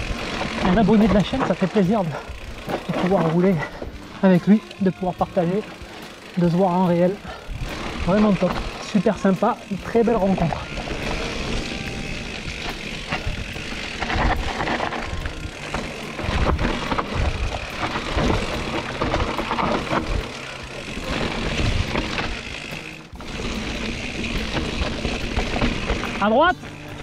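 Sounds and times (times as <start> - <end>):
bike rattling over stones: 0.0 - 27.0.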